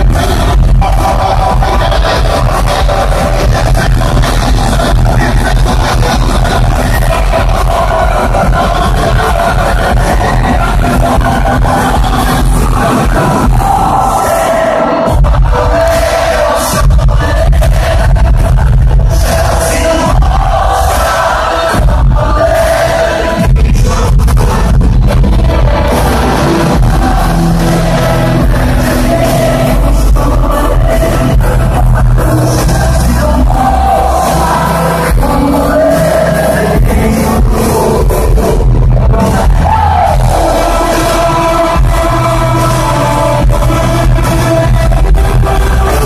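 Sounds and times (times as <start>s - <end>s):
loud concert music with heavy bass: 0.0s - 46.0s.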